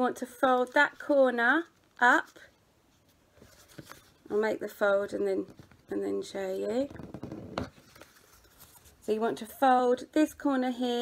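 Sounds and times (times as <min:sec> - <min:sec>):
paper rustling and rubbing: 0:02.2 - 0:04.3, 0:06.8 - 0:09.2.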